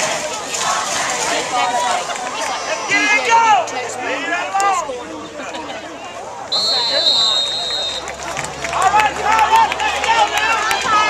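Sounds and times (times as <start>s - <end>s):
crowd shouting: 0.0s - 11.0s
referee whistle blast: 6.5s - 8.0s.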